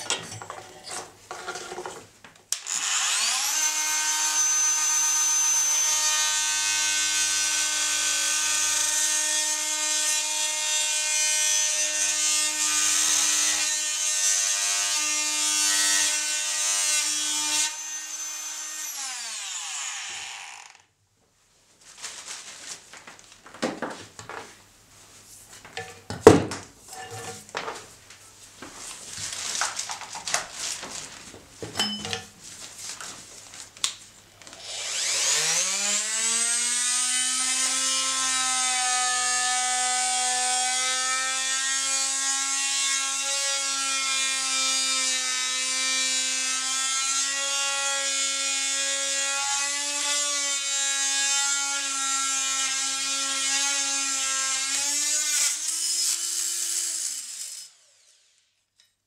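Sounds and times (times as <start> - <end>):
multi-tool saw cutting wood: 2.6 - 20.9, 34.6 - 58.5.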